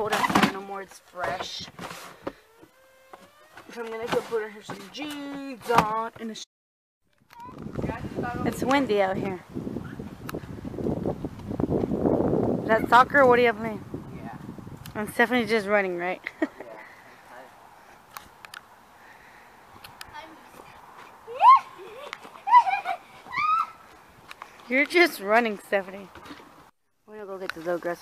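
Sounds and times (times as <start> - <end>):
wind buffeting microphone: 7.4 - 15.8
small child squealing: 21.3 - 23.8.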